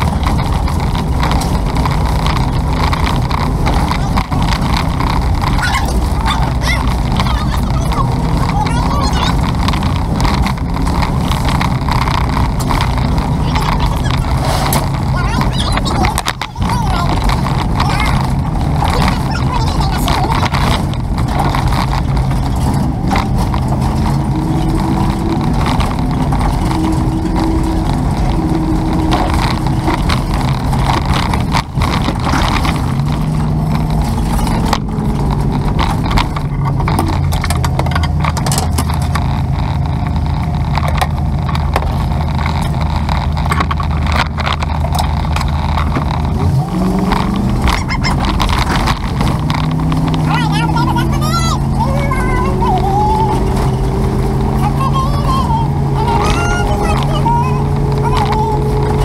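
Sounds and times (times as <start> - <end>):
vehicle engine and road noise: 0.0 - 59.0.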